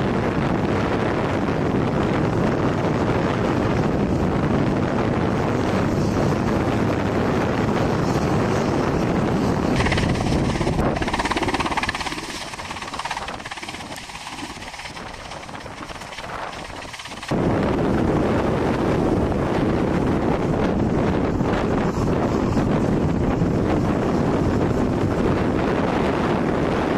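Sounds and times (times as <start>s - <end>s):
wind buffeting microphone: 0.0s - 26.9s.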